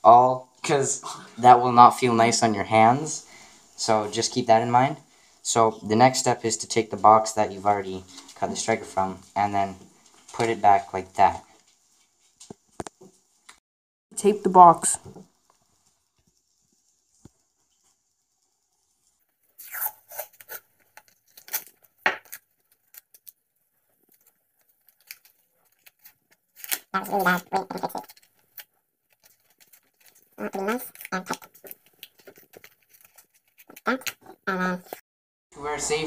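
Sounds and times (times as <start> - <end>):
voice: 0.0 - 3.2, 3.8 - 9.8, 10.4 - 11.4, 14.1 - 15.2, 27.0 - 28.0, 30.4 - 31.4, 35.6 - 36.0
adhesive tape tearing: 19.6 - 23.4, 24.1 - 35.0.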